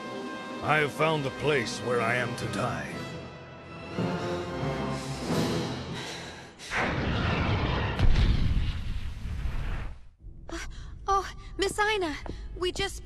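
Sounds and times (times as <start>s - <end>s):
dramatic orchestral music: 0.0s - 6.3s.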